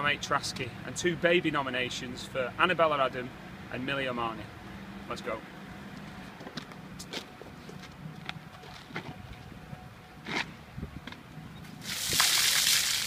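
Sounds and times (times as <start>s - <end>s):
water splashing: 11.8s - 13.0s.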